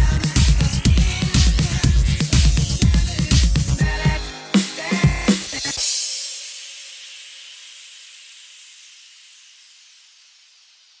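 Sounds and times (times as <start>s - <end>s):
hiss-like electronic noise: 4.2s - 11.0s.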